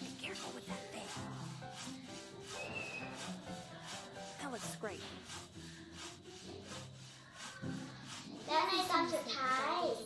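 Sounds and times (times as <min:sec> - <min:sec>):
marker rubbing on whiteboard: 0:00.0 - 0:10.0.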